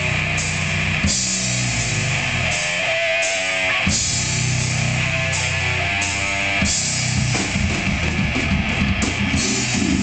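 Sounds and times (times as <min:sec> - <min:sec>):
distorted electric guitars: 0:00.0 - 0:10.0
drum kit: 0:00.0 - 0:10.0.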